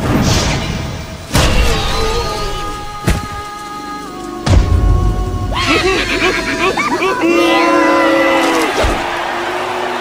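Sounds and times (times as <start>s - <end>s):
excited cartoon voices: 5.5s - 10.0s.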